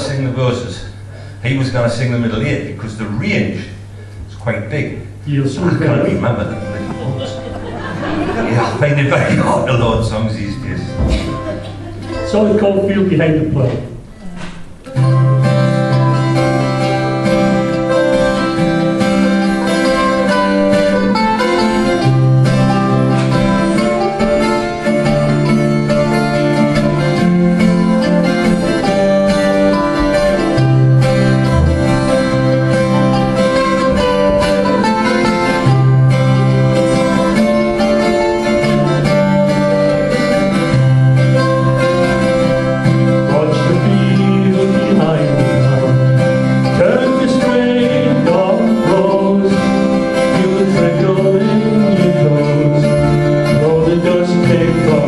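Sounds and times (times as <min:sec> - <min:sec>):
acoustic guitar strummed: 0:05.1 - 0:55.0
mandolin picked: 0:05.1 - 0:55.0.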